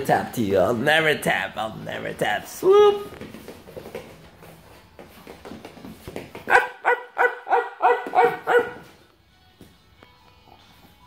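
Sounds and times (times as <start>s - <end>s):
dog barking: 6.5s - 9.0s.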